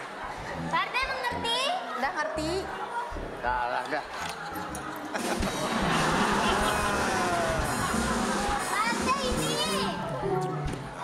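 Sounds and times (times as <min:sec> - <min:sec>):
music: 0:02.4 - 0:11.0
excited voices calling out: 0:05.8 - 0:10.0.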